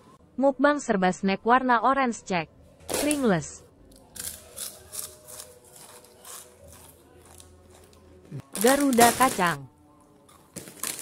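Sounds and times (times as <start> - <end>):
crisp crunching while chewed: 4.1 - 9.0.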